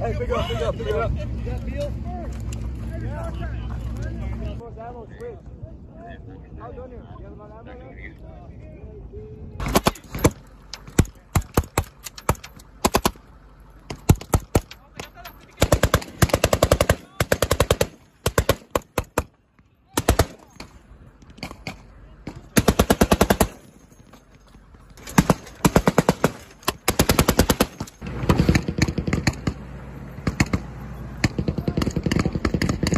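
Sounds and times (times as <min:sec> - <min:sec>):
machine gun bursts: 0:09.6 - 0:13.2, 0:14.1 - 0:19.2, 0:22.6 - 0:23.7, 0:25.0 - 0:29.3
rifle gunfire: 0:09.6 - 0:13.2, 0:15.6 - 0:19.3, 0:20.0 - 0:20.8, 0:22.6 - 0:23.7, 0:25.0 - 0:29.6.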